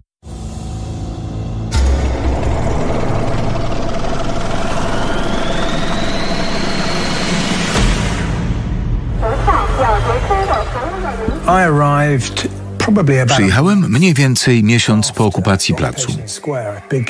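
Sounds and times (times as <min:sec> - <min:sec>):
sudden hit: 0:01.6 - 0:04.2.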